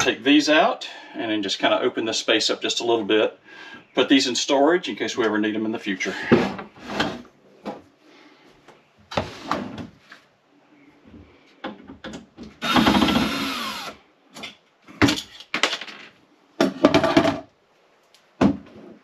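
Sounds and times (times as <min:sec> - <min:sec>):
drawers sliding on metal slides: 0:06.2 - 0:07.3
cordless drill running: 0:12.6 - 0:14.0
drawer knocks and rattles: 0:16.6 - 0:17.5.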